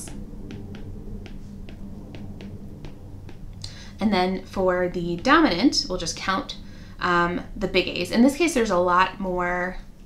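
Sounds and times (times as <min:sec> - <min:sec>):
stylus tapping tablet screen: 0:00.0 - 0:03.5
steady low hum: 0:00.0 - 0:10.0.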